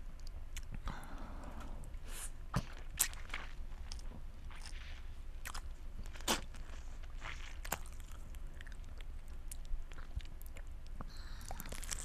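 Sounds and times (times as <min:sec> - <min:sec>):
biting into a lemon: 0:05.4 - 0:08.8.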